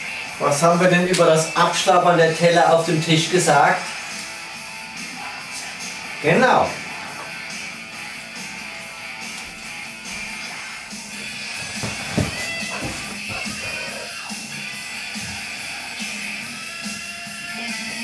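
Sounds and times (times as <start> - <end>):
live rock music from television: 0.0 - 18.0.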